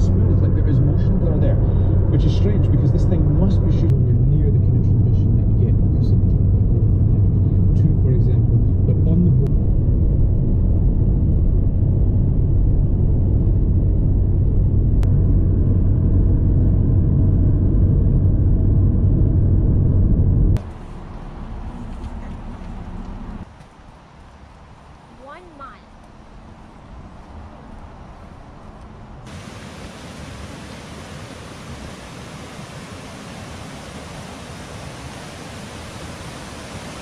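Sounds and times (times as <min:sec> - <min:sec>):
car road noise at highway speed: 0:00.0 - 0:37.0
outdoor hiss: 0:29.2 - 0:37.0.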